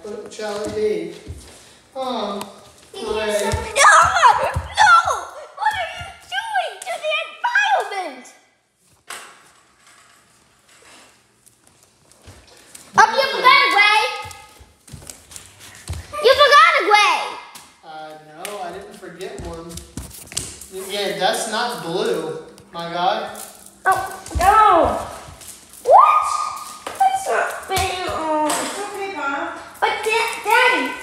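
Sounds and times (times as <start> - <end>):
people talking and calling out: 2.2 - 8.3.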